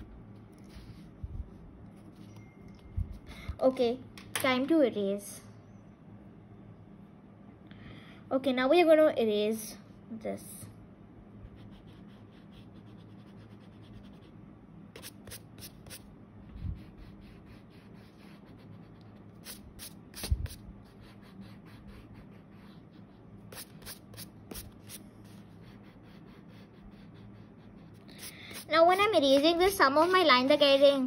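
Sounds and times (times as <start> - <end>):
eraser rubbing on paper: 15.0 - 31.0.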